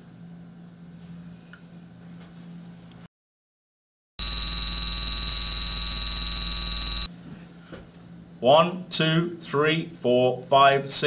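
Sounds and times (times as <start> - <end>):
faint hum: 4.2 - 7.1
loud high-pitched steady tone: 4.2 - 7.1.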